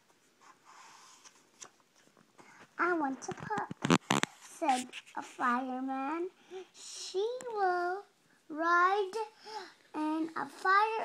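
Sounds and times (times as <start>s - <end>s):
paper page being turned: 3.1s - 5.5s.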